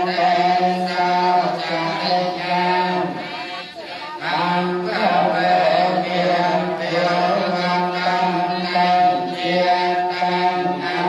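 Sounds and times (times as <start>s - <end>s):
droning chanting: 0.0s - 11.0s.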